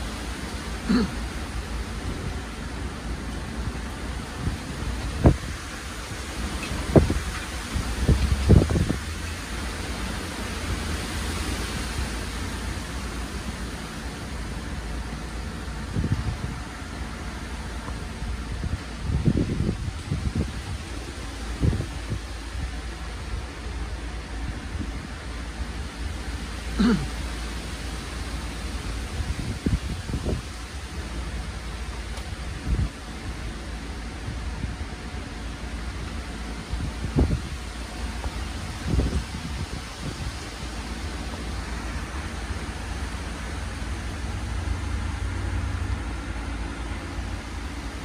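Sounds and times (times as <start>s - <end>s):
wind buffeting microphone: 0.0s - 26.4s, 27.7s - 48.0s
heavy rain: 0.0s - 48.0s.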